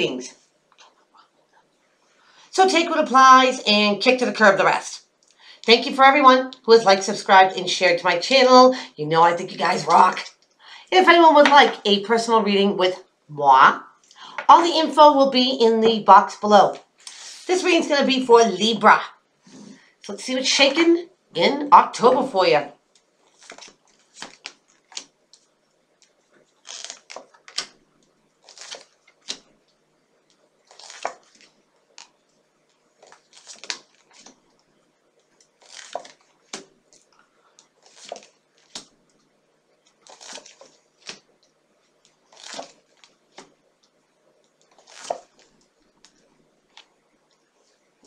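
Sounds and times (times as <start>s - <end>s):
cards being shuffled: 23.2s - 27.8s, 28.4s - 29.5s, 30.7s - 32.2s, 33.0s - 34.4s, 35.4s - 39.0s, 39.9s - 41.3s, 42.3s - 43.6s, 44.6s - 46.9s.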